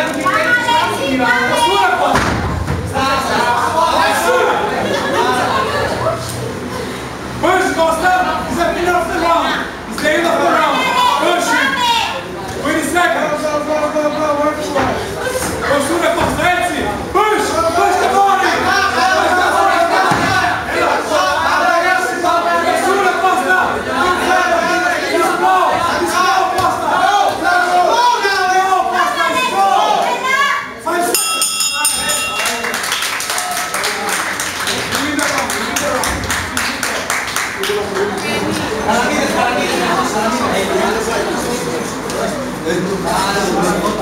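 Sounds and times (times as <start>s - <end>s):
crowd shouting and yelling: 0.0s - 34.1s
voices of people: 0.0s - 44.0s.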